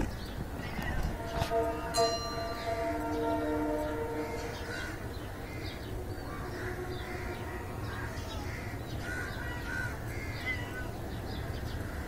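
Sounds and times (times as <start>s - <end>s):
birds calling: 0.0s - 12.0s
steady low rumble: 0.0s - 12.0s.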